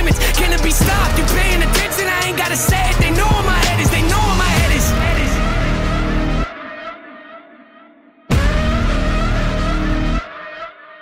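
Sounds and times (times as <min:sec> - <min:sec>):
hip-hop beat: 0:00.0 - 0:11.0
muffled music tail: 0:02.6 - 0:07.4.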